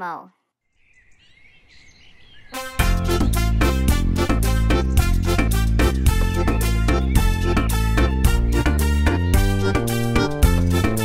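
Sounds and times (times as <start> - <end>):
person speaking: 0.0 - 0.3
birds chirping: 0.6 - 11.0.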